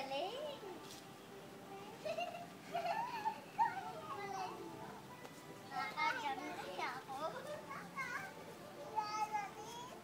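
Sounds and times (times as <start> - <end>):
children calling and squealing: 1.7 - 5.0, 5.6 - 10.0.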